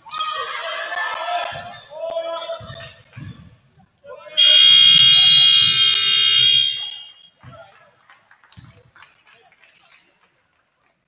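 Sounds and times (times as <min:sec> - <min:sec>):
scoreboard horn buzzing: 0:04.4 - 0:07.2.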